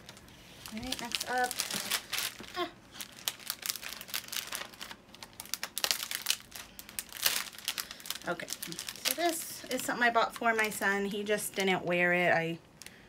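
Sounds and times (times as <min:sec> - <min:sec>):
cellophane bag crinkling: 0:00.0 - 0:11.9.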